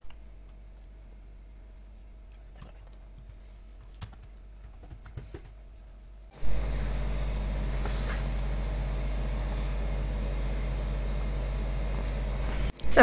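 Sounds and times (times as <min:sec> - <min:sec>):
low electrical hum with hiss: 0:00.0 - 0:13.0.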